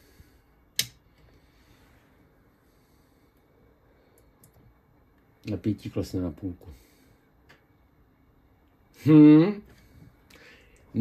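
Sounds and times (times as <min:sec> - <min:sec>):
faint light clicks: 0:04.1 - 0:05.3.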